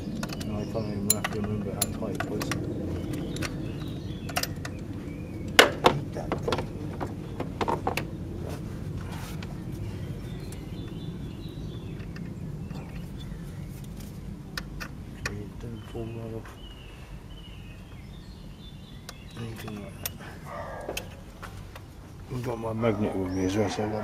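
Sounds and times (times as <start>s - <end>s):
low background hum: 0.0s - 24.0s
metal tools clinking on plastic: 0.1s - 3.6s.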